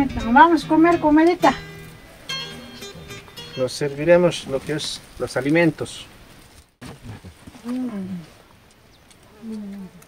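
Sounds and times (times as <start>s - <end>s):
person humming closed-mouth mm: 7.0s - 8.4s, 9.3s - 10.0s.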